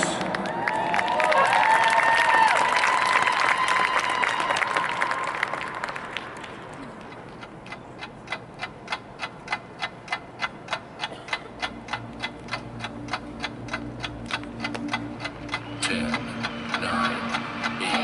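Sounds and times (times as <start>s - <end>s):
clock-like ticking: 7.1s - 18.0s.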